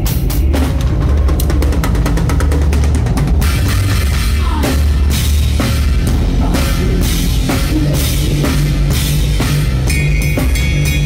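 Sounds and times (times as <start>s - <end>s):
rapid drum hits: 0.0s - 11.0s
rock band playing: 0.0s - 11.0s
ringing cymbal wash: 9.4s - 11.0s.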